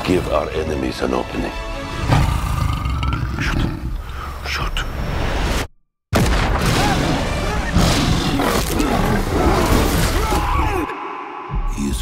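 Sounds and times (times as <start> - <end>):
trailer music and sound effects: 0.0 - 12.0.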